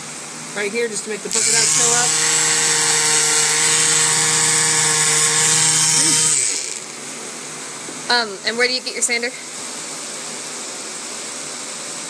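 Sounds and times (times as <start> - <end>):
electric sander on glass: 1.3 - 7.0.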